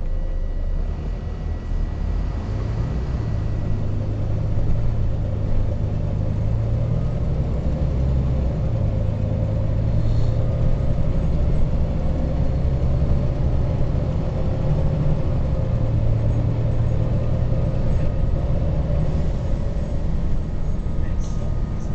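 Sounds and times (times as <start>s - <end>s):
bus engine drone: 0.0s - 21.9s.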